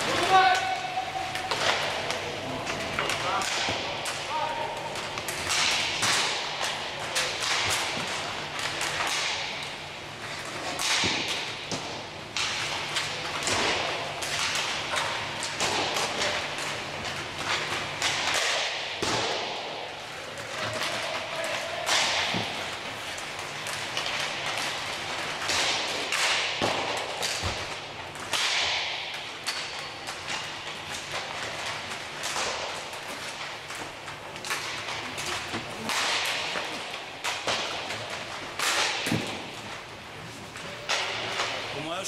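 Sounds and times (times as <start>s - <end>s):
skate wheels rolling: 0.0s - 41.8s
sticks slapping pucks: 0.0s - 41.9s
pucks striking boards: 0.0s - 42.0s.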